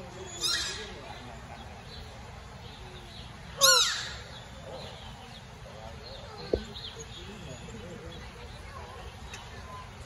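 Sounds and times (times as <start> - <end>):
animal cry: 3.6 - 4.3.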